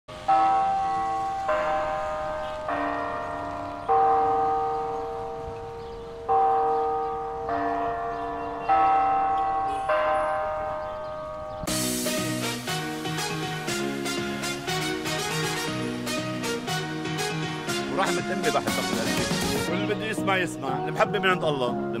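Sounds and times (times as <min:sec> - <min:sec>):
chime bells playing a melody: 0:00.2 - 0:22.0
music: 0:11.7 - 0:22.0.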